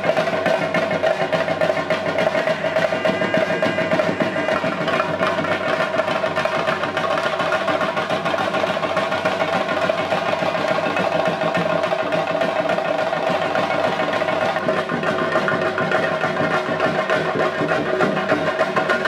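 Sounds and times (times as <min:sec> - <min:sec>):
fast dense drumming: 0:00.0 - 0:19.0.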